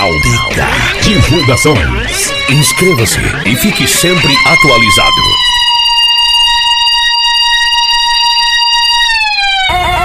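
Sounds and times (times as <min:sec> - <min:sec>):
siren sound effect: 0:00.0 - 0:10.0.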